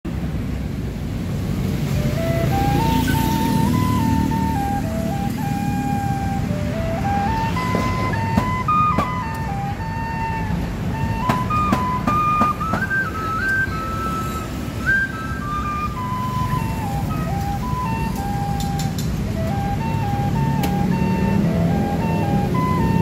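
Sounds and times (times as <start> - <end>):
low rumble of street noise: 0.1 - 23.0
bamboo flute melody: 1.8 - 23.0.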